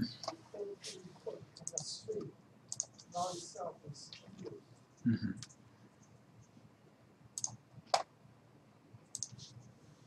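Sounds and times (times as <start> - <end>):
computer mouse clicking: 1.6 - 3.1, 7.4 - 8.1, 9.1 - 9.6.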